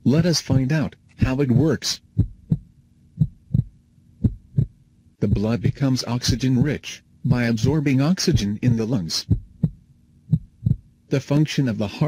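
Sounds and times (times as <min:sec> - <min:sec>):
heartbeat thumps: 0:00.1 - 0:11.0.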